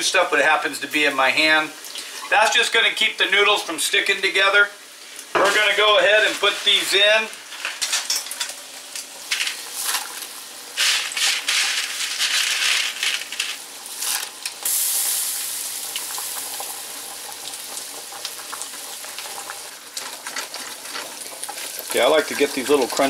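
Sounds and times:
water boiling and hissing: 0.2 - 23.0
meat sizzling in skillet: 1.4 - 23.0
pasta clattering into pot: 7.5 - 8.6, 9.3 - 14.6
spatula scraping skillet: 9.3 - 14.4.

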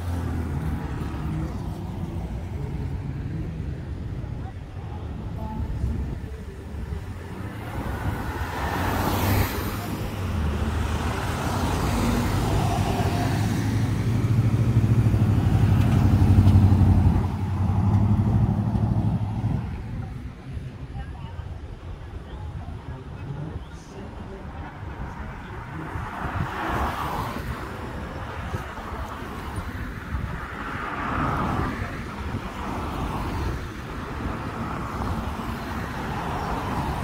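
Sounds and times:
cars passing on street: 0.0 - 37.0.

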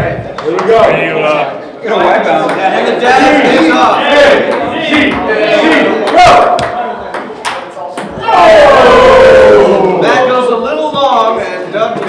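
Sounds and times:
voices in a large room: 0.0 - 12.0.

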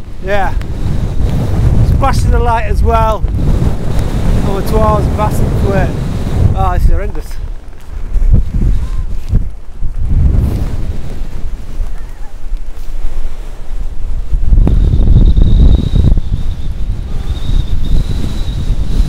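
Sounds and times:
gusty wind buffeting microphone: 0.0 - 19.0
thin high whistle: 14.7 - 19.0.

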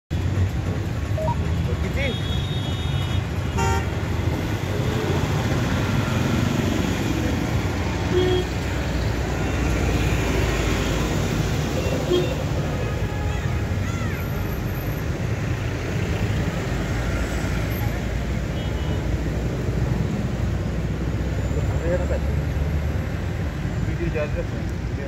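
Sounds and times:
rumble of passing vehicles: 0.1 - 25.0
vehicle horn toots: 2.0 - 3.9, 8.1 - 8.5.

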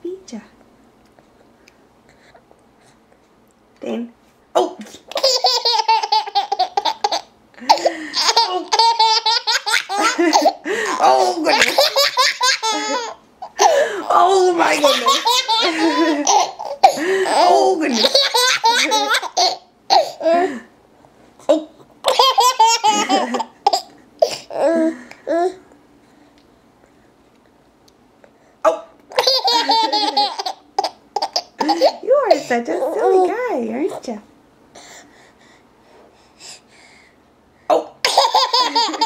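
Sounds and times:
baby laughing: 5.1 - 20.4, 22.0 - 24.8, 29.1 - 32.4, 38.0 - 39.0.

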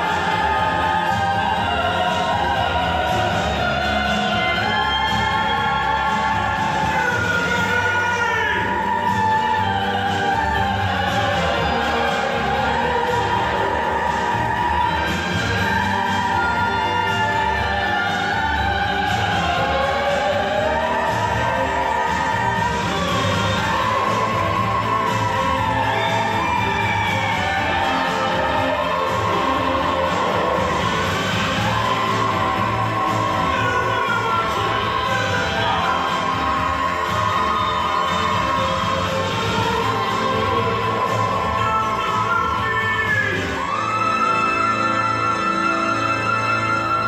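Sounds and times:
stage orchestra: 0.0 - 47.0.

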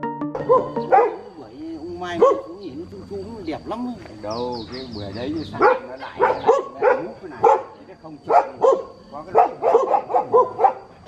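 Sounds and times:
dog barking: 0.4 - 1.3, 2.2 - 2.6, 5.5 - 10.9.

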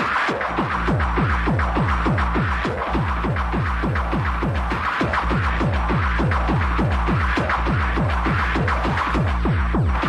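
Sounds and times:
fast kick drum: 0.0 - 10.0
hard techno music: 0.0 - 10.0.

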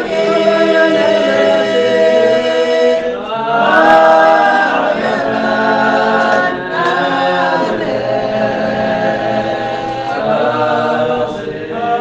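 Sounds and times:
group singing a hymn unaccompanied: 0.0 - 12.0.

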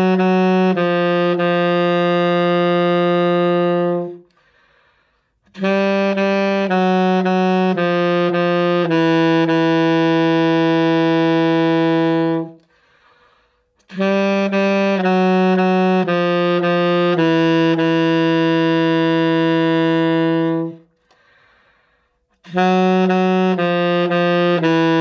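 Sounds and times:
alto saxophone low notes: 0.0 - 4.6, 5.3 - 25.0.

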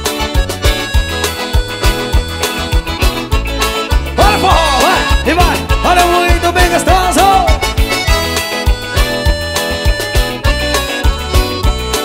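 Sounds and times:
live band playing: 0.0 - 12.0
sliding melody line: 0.0 - 12.0.

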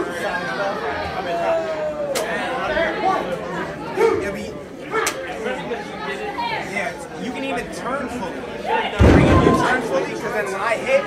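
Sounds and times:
crowd chatter in a large hall: 0.0 - 11.0.

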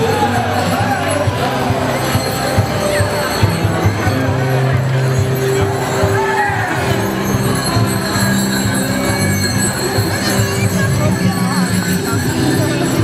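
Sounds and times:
band music with low notes: 0.0 - 13.0
harness bells jingling: 0.0 - 13.0.

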